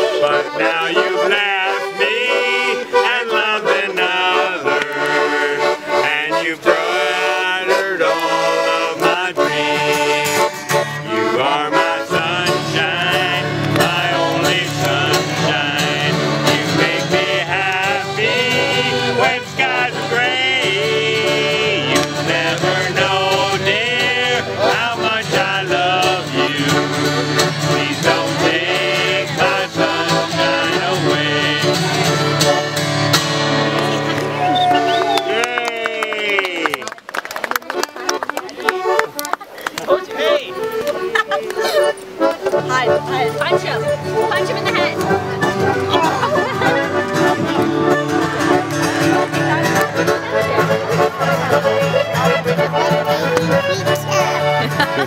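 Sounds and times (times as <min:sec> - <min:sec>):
acoustic guitar strumming: 0:00.0 - 0:35.0, 0:39.8 - 0:55.0
button accordion playing: 0:00.0 - 0:35.6, 0:37.6 - 0:55.0.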